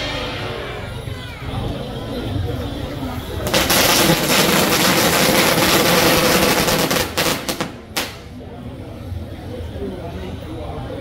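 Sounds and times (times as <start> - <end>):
firecrackers crackling: 3.4 - 8.4.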